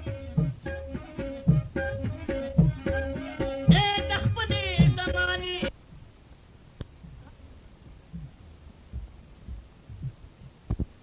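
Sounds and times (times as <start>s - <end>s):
soft low drum strokes: 7.0s - 11.0s.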